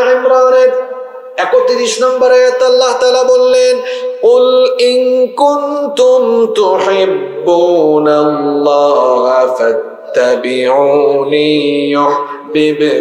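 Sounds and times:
man chanting into microphone: 0.0 - 13.0.

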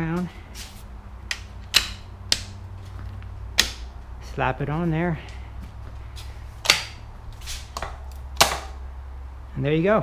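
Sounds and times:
sharp knocks: 6.6 - 7.0, 7.7 - 8.8.

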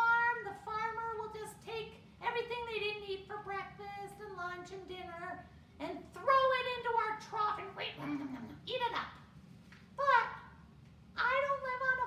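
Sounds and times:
woman's high-pitched puppet voice: 0.0 - 9.2, 10.0 - 10.5, 11.2 - 12.0.

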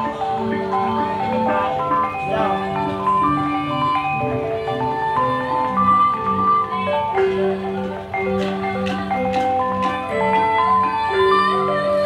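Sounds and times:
bronze metallophone notes: 0.0 - 12.0.

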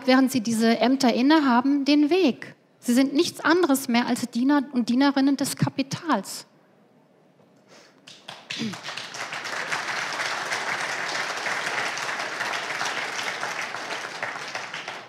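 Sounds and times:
audience applauding: 8.0 - 15.0.

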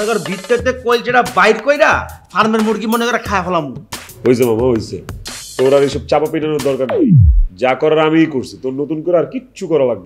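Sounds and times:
background music: 0.0 - 7.9.

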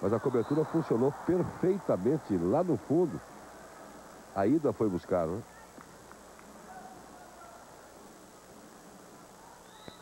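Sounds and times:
faint crowd murmur: 0.0 - 10.0.

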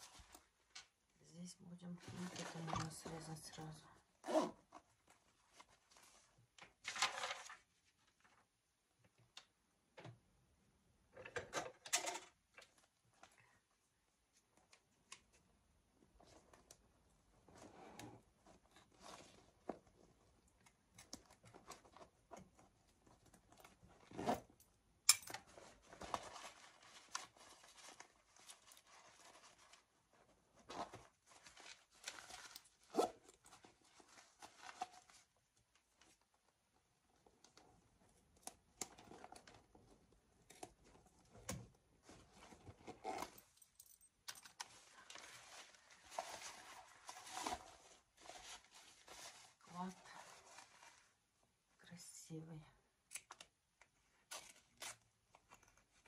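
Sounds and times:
bag rustling and crinkling: 44.6 - 51.2.

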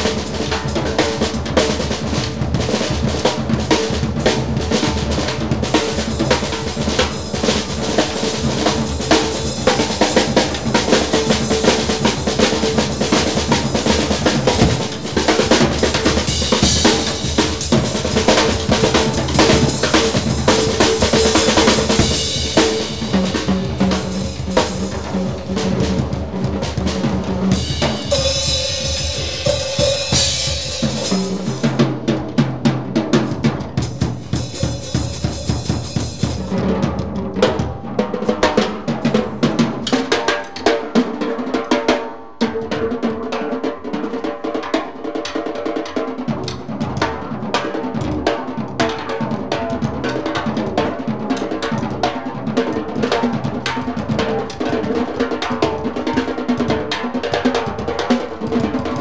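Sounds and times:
snare and tom strokes: 0.0 - 41.2
bass drum: 12.7 - 32.1.

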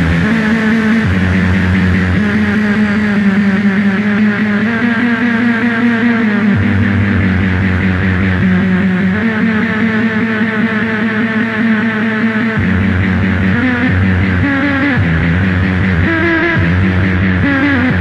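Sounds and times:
distorted noise music: 0.0 - 18.0
loud low drone: 0.0 - 18.0.

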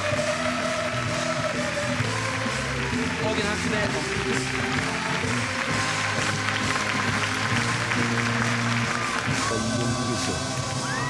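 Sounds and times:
audience applauding: 0.0 - 11.0
music with held notes: 0.0 - 11.0.

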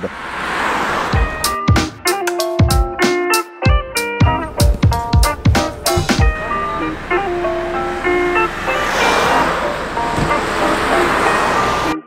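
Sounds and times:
vehicle passing close by: 0.0 - 1.4, 5.8 - 12.0
background music with held notes: 1.2 - 12.0.

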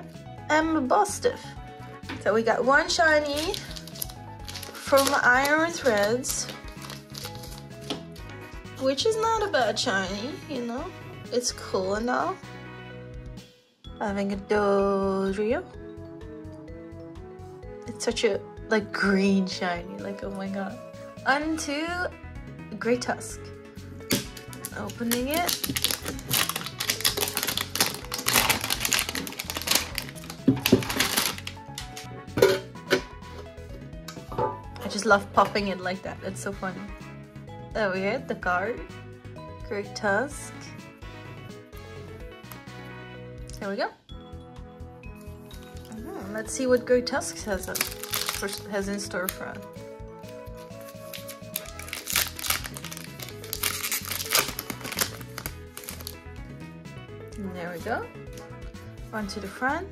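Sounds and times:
background music: 0.0 - 59.9
plastic shrink-wrap crinkling and tearing: 3.2 - 8.3, 24.1 - 32.1, 47.3 - 49.6, 50.2 - 56.3
metal tin lid popping open: 31.8 - 33.1.

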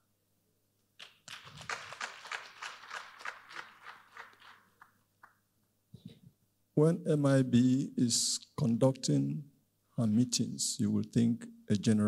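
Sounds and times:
audience applauding: 1.0 - 5.4.

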